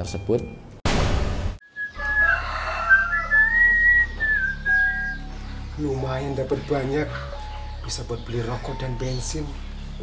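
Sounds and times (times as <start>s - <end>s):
whistled melody: 1.6s - 5.6s, 6.4s - 9.6s.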